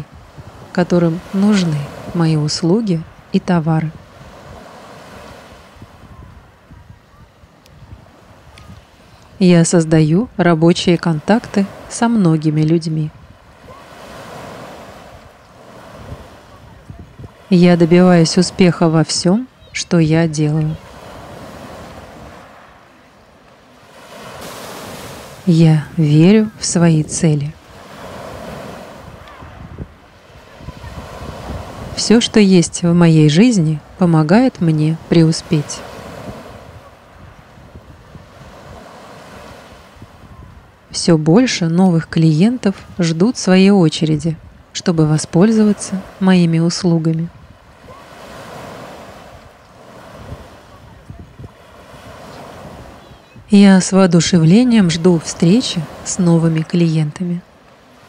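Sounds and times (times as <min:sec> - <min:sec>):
waves breaking on shore: 0:00.0 - 0:58.0.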